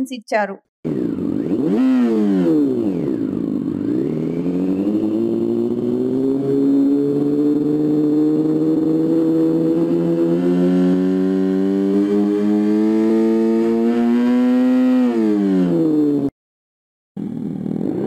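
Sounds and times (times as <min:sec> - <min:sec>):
synthetic motorcycle engine revving: 0:00.8 - 0:16.3, 0:17.2 - 0:18.0.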